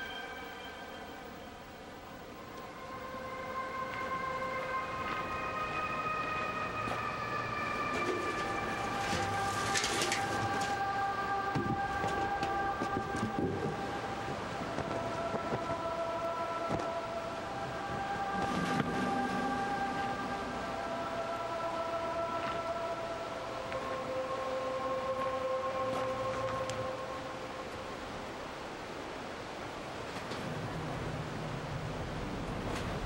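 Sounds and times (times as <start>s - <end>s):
constant hiss: 0.0s - 33.0s
dark ambient drone: 0.0s - 33.0s.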